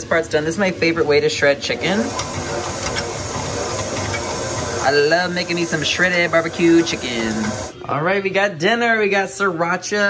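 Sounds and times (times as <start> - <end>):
stand mixer whisk beating: 0.0 - 7.7.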